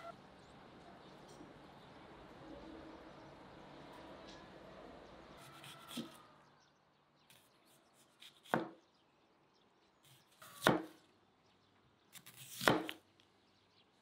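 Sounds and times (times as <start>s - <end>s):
faint outdoor background: 0.0s - 14.0s
knife slicing onion: 5.4s - 6.2s, 7.3s - 8.8s, 10.1s - 11.0s, 12.1s - 13.0s.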